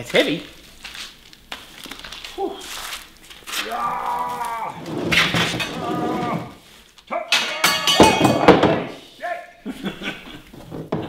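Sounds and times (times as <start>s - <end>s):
knocks and rustling of plastic: 10.5s - 11.0s.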